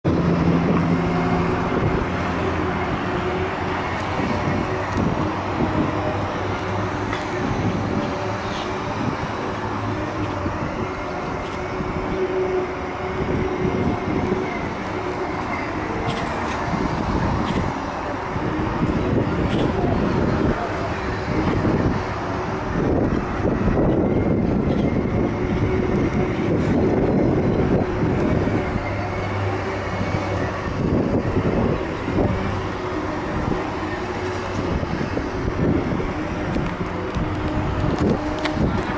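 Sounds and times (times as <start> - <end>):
low rumbling noise: 0.0 - 38.9
electric motors whining: 0.1 - 38.9.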